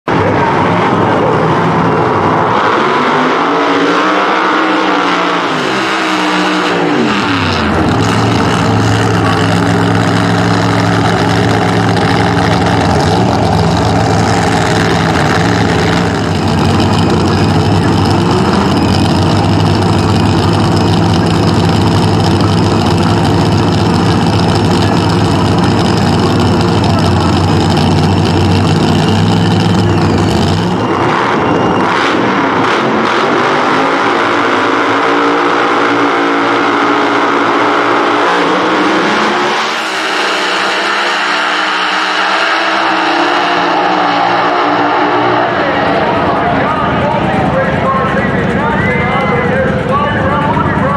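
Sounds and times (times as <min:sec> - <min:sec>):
cars rushing down track: 0:00.0 - 0:50.9
loud drag racing engines: 0:00.0 - 0:50.9.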